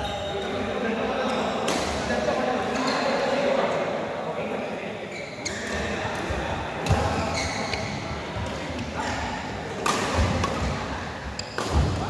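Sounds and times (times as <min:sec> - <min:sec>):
shoe squeaks: 0:00.0 - 0:00.6, 0:05.1 - 0:05.9, 0:07.2 - 0:08.0, 0:11.3 - 0:11.6.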